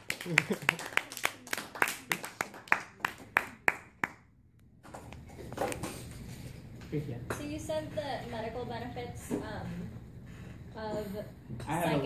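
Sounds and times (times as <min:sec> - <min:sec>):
audience applauding: 0:00.0 - 0:04.2
sharp hand claps close by: 0:00.0 - 0:04.3.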